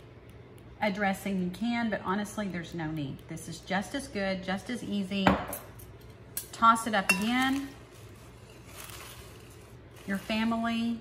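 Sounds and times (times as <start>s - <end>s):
leaves rustling in a bowl: 7.2s - 11.0s.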